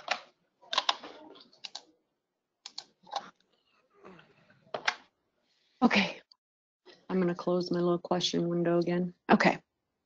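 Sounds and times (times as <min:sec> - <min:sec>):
computer keyboard typing: 0:00.0 - 0:01.9, 0:02.6 - 0:03.3.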